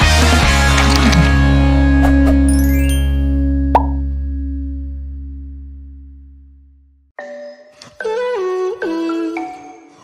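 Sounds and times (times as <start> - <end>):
held low synth chord: 3.0 - 7.1
short pop sound effect: 3.7 - 4.1.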